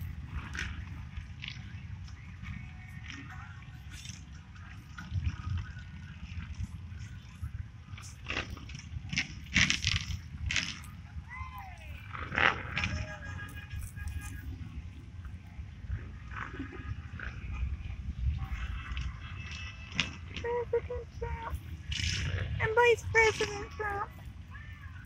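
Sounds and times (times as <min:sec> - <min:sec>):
passing traffic: 0:00.0 - 0:25.0
wind rumble on microphone: 0:00.0 - 0:25.0.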